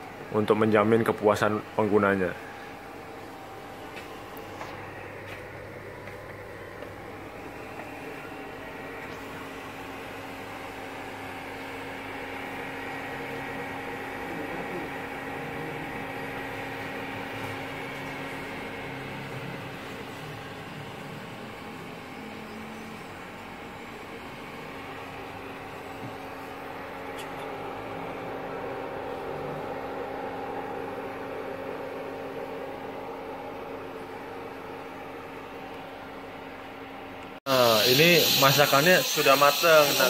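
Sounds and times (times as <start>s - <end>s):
steady machine hum: 0.0s - 40.0s.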